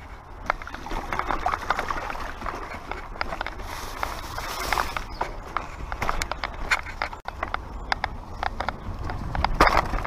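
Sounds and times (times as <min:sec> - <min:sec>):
bike rattling with sharp knocks: 0:00.0 - 0:10.0
bike tyres rolling on rocky trail: 0:00.0 - 0:10.0.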